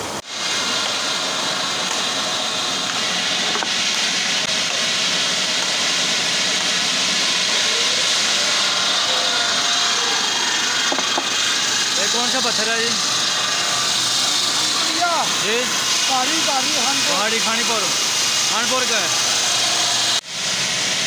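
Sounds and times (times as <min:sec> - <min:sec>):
water spray: 0:00.2 - 0:21.0
circular saw grinding through stone: 0:00.4 - 0:20.2.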